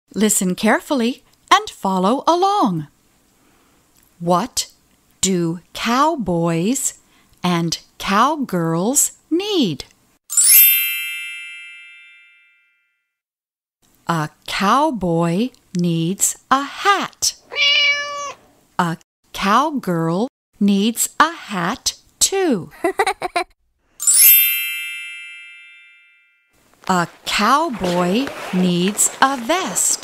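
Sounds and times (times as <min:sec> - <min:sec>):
bright chime ringing: 0:24.0 - 0:26.5.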